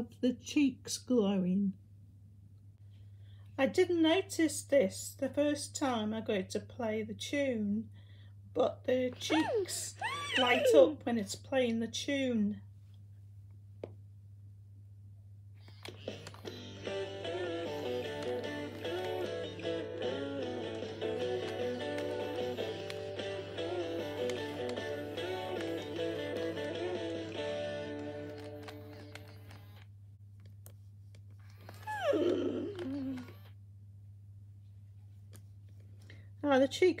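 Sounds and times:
toy horse sound effect: 9.3s - 10.8s.

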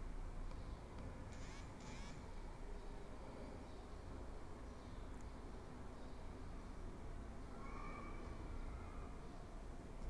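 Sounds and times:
low hum with hiss: 0.0s - 10.0s.

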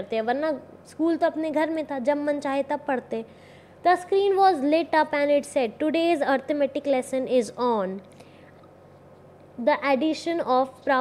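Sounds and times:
woman speaking: 0.0s - 8.1s, 9.6s - 11.0s
steady background hiss: 0.0s - 11.0s.

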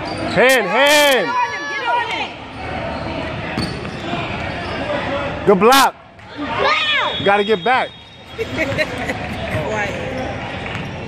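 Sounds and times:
court noise: 0.0s - 11.0s.

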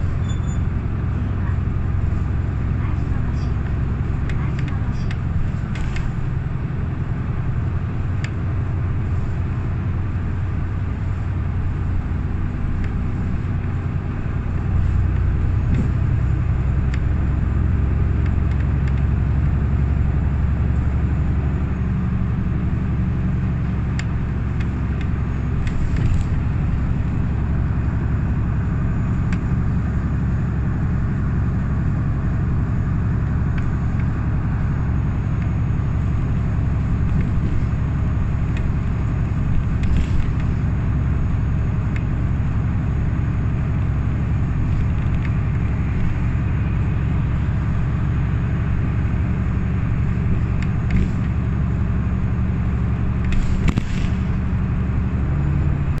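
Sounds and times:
bus engine drone: 0.0s - 56.0s
tyre and road rumble: 0.0s - 56.0s.

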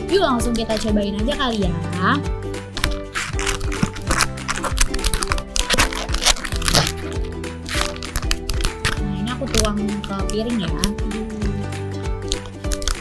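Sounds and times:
background music: 0.0s - 13.0s
plastic pouch crinkling: 2.6s - 11.2s, 12.2s - 13.0s.

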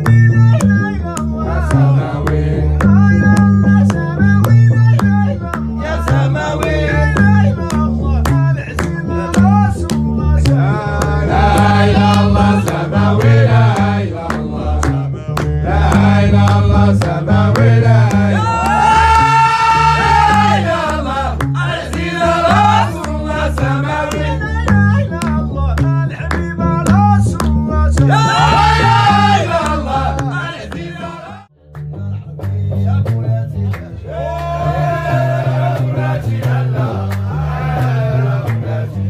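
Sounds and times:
sharp handclaps: 0.0s - 30.9s, 31.7s - 34.6s, 35.7s - 38.6s
deep plucked bass line: 0.0s - 39.0s
sung chant: 0.0s - 39.0s.

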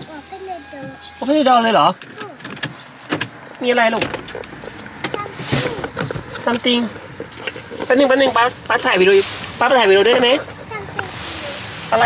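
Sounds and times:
car door opening: 1.9s - 7.6s.

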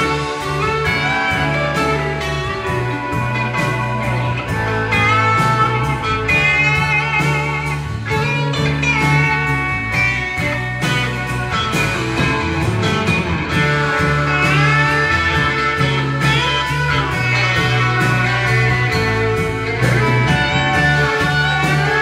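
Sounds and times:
bass and drums: 0.0s - 22.0s
electric guitar lead: 0.0s - 22.0s.

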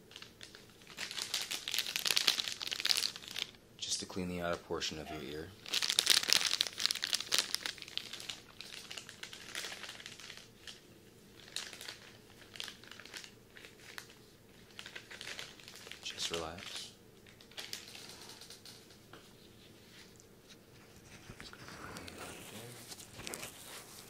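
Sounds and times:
plastic packet crinkling: 0.0s - 3.6s, 5.3s - 19.0s.

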